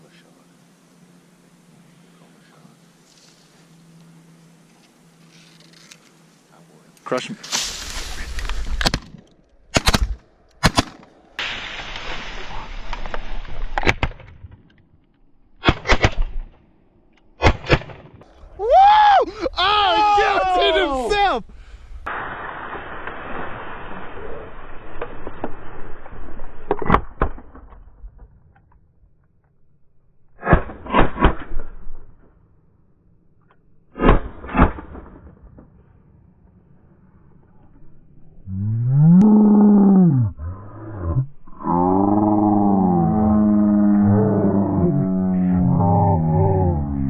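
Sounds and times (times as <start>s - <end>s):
shotgun shots: 9.7s - 11.8s, 15.6s - 16.5s, 17.4s - 18.2s.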